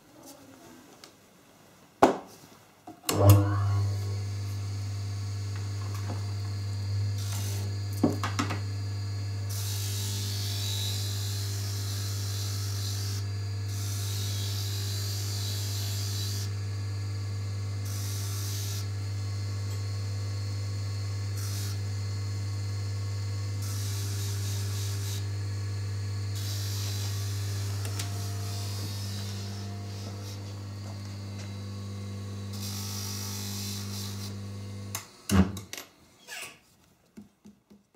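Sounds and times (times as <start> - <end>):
polishing motor humming: 3.1 - 35.0.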